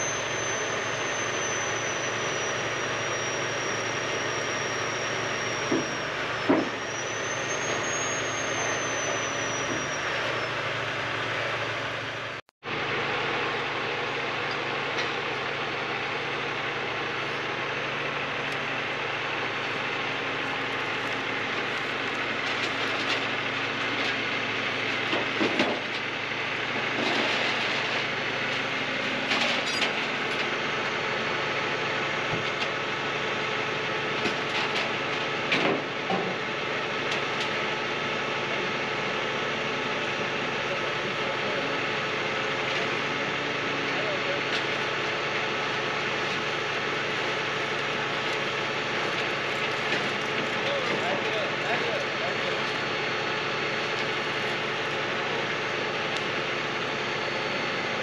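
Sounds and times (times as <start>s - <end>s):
diesel engine idling: 0.0s - 58.0s.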